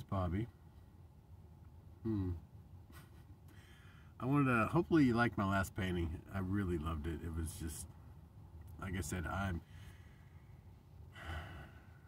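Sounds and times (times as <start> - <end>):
man talking: 0.0 - 0.5, 4.2 - 7.8, 8.8 - 9.7
man breathing: 3.5 - 4.2, 9.6 - 12.0.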